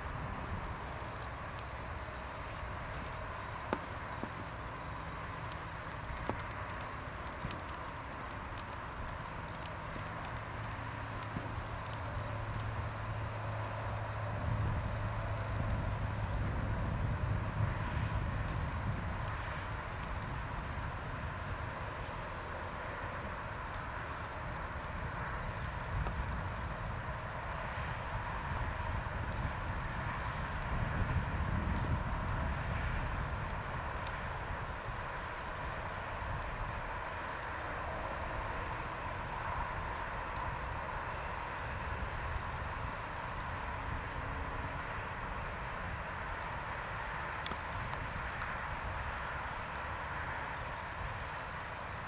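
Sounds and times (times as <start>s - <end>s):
wind on microphone: 11.1s - 52.0s.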